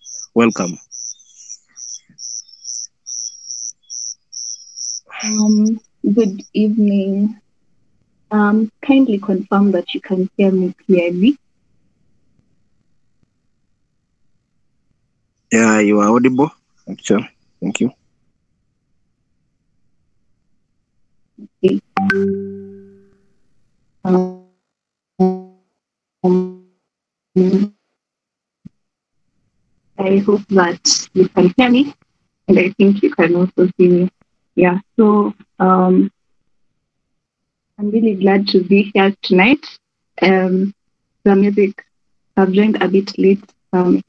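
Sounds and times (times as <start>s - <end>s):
cricket chirping: 0.0s - 6.6s.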